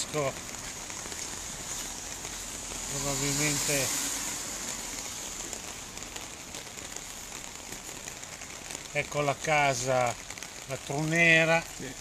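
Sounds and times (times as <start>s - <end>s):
floodwater running along street: 0.0s - 12.0s
steady rain pattering: 0.0s - 12.0s.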